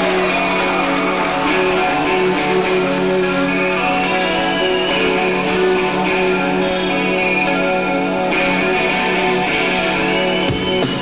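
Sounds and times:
electric guitar ringing chords: 0.0s - 11.0s
rock band playing live: 0.0s - 11.0s.

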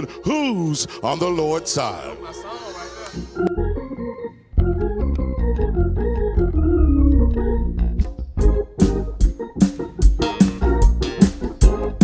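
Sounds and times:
organ playing held chords: 0.0s - 12.0s
deep bass line: 3.5s - 3.9s, 4.6s - 12.0s.

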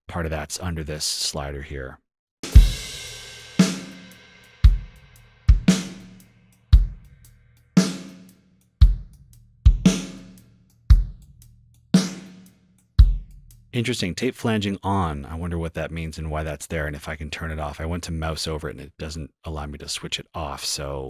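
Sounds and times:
kick and snare drums: 2.4s - 6.2s, 6.8s - 7.2s, 7.8s - 8.2s, 8.8s - 11.3s, 12.0s - 12.4s, 13.0s - 13.6s.

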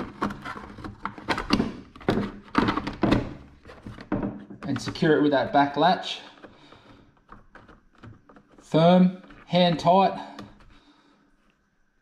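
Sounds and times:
hard plastic knocks: 0.0s - 5.2s.

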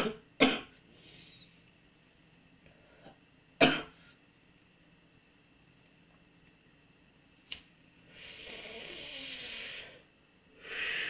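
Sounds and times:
man breathing noisily: 8.0s - 11.0s.

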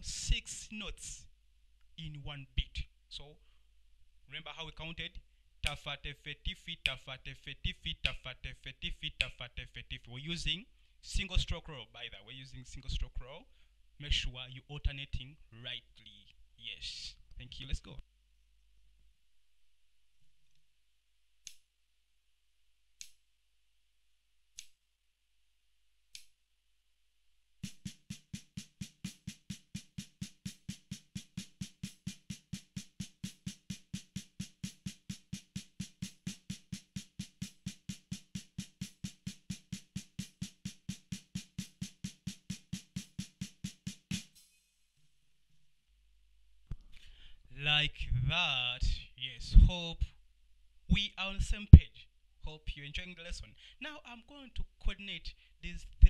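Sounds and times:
snare drum roll: 27.6s - 44.4s.

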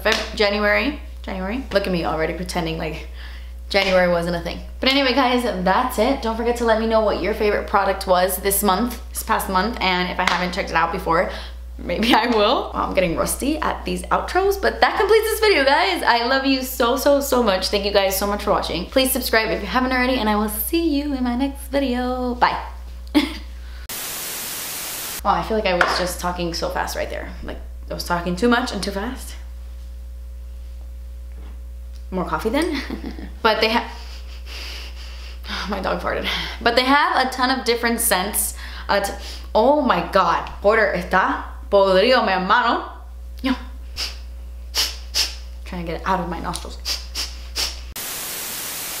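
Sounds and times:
static white noise hiss: 21.7s - 49.0s
loud static hiss: 23.8s - 25.3s, 46.8s - 49.0s
breath puffs through the nose: 43.9s - 45.4s, 46.8s - 47.9s.

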